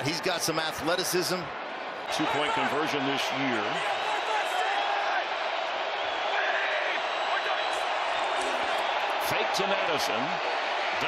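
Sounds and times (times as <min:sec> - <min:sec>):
stadium crowd din: 0:00.0 - 0:11.0.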